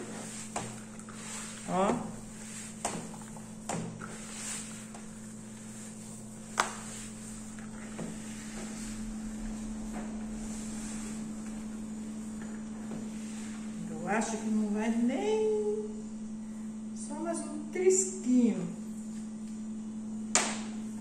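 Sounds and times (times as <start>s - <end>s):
hands kneading dough in a bowl: 0.0s - 14.6s
steady low hum: 0.0s - 21.0s.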